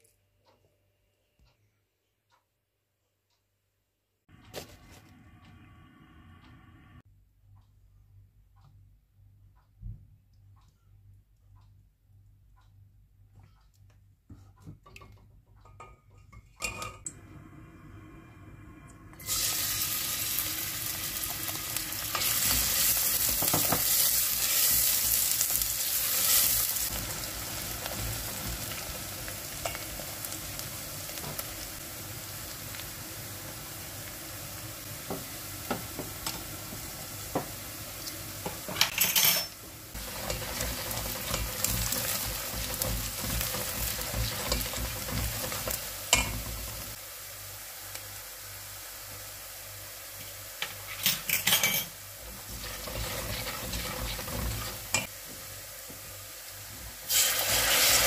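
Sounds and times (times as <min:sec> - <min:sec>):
onion sizzling in hot oil: 0:19.2 - 0:58.0
spoon scraping against pot: 0:50.6 - 0:55.1.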